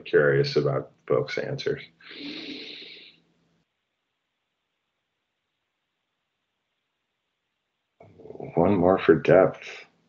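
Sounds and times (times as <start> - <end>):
person exhaling close to microphone: 2.0 - 3.1.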